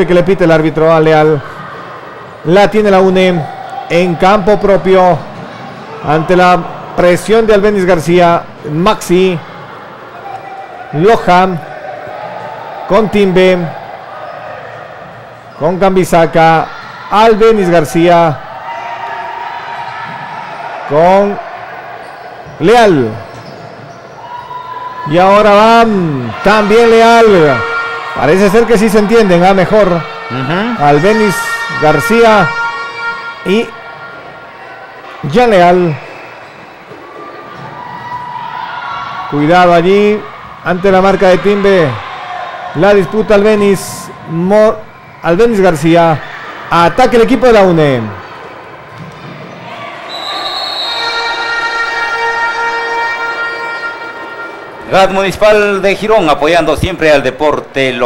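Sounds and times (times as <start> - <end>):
horn long steady note: 26.6 - 34.5, 50.6 - 55.0.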